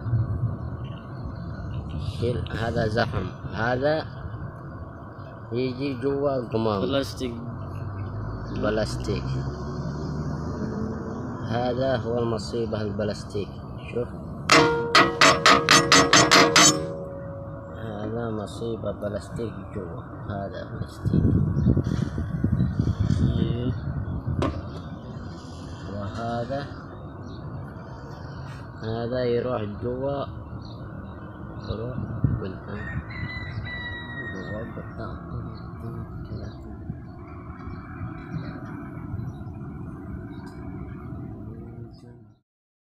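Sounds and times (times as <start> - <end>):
low machinery rumble: 13.8 - 19.0
ringing metal knocks: 14.5 - 18.6.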